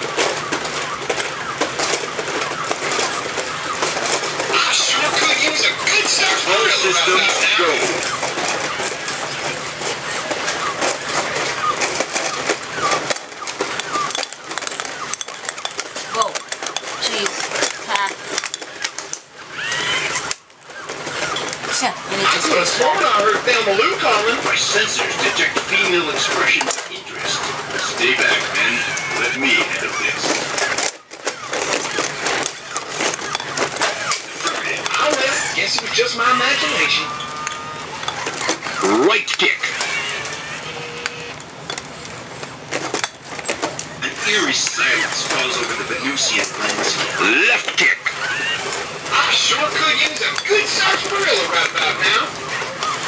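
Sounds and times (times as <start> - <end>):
electric gear motors whirring: 0.0 - 53.0
toy robots clicking and clattering: 0.0 - 53.0
robot electronic voice: 4.4 - 8.8, 16.0 - 18.3, 21.7 - 30.6, 34.0 - 41.0, 44.0 - 52.8.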